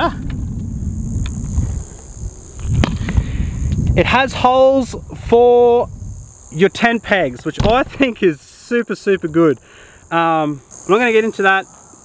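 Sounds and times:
microphone handling rumble: 0.0 - 8.3
high insect drone: 0.0 - 12.0.

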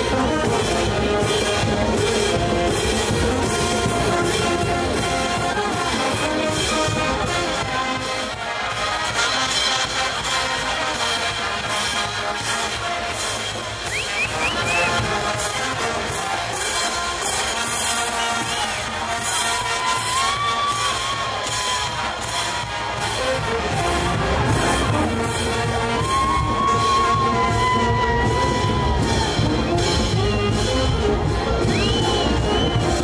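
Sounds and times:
brass band playing: 0.0 - 33.0
drum and cymbal beat: 0.0 - 33.0.

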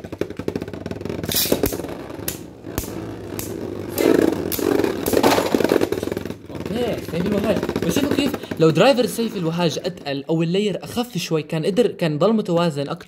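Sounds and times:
spinning tops whirring: 0.0 - 10.0
spinning tops clacking together: 1.2 - 6.2
ticking scrape of top tips: 1.2 - 9.5.

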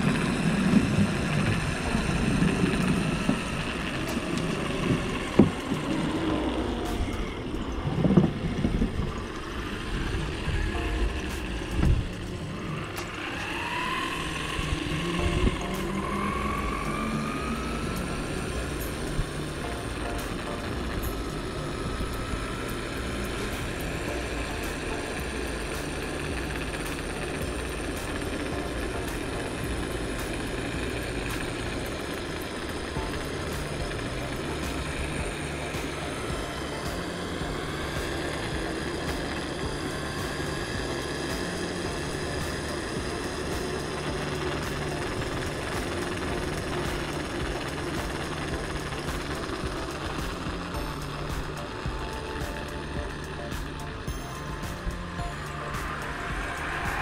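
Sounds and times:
electric motor whine: 0.0 - 57.0
rolling and wind noise: 0.0 - 57.0.

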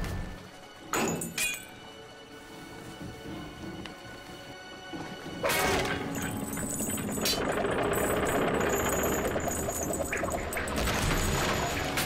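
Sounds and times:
heavy chain rattling: 6.0 - 11.8.

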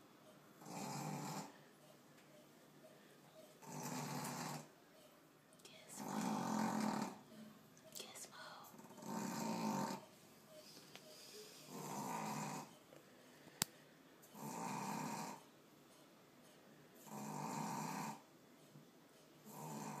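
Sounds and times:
dog snoring: 0.6 - 1.6, 3.6 - 4.8, 5.9 - 7.3, 8.7 - 10.1, 11.4 - 12.8, 14.3 - 15.5, 17.0 - 18.3, 19.4 - 20.0.

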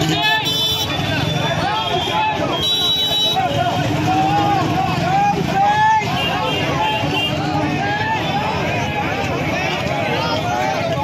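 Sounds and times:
crowd calling and shouting: 0.0 - 11.0.

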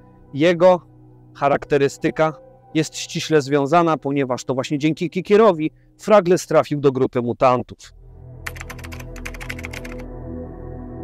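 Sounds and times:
low droning ambient music: 0.0 - 7.1, 7.9 - 11.0.

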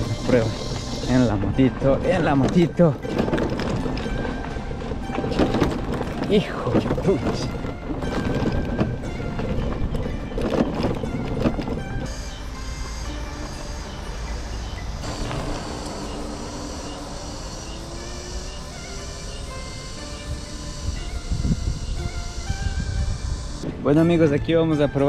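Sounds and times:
background music: 0.0 - 25.0
road rumble: 0.0 - 25.0
motorcycle knocking over bumps: 1.6 - 12.4, 15.0 - 23.8
wind on microphone: 20.2 - 23.9.

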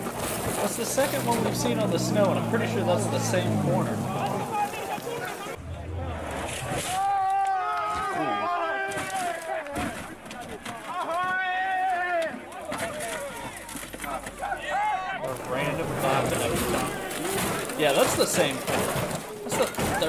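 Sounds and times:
outdoor background noise: 0.0 - 20.0
spectators calling out: 0.6 - 20.0.

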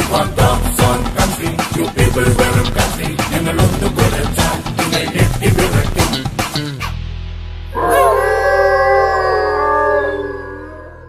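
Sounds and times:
dogs howling: 7.8 - 11.0.

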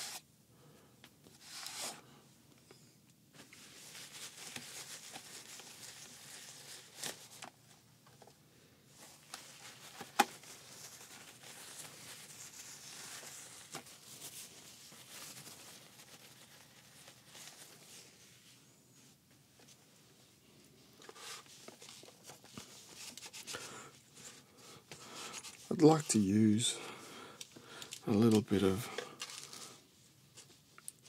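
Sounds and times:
soft crinkling: 1.1 - 31.0.

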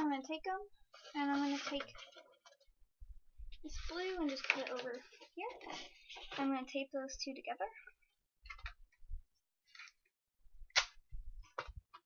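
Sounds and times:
paper rustle: 0.9 - 2.7, 3.8 - 6.7.

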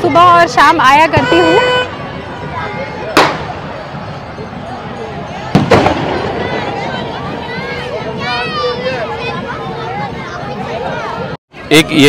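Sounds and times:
crowd chatter: 0.0 - 12.0
firecracker bang: 3.1 - 3.7, 5.5 - 7.0.

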